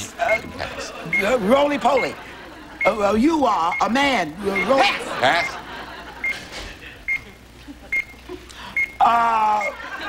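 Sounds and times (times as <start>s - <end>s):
countdown clock beeping: 0.0s - 9.8s.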